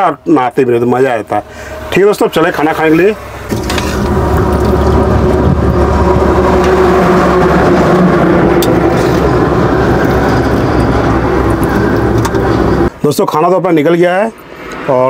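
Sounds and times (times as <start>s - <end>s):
vehicle engine running: 1.2s - 12.9s.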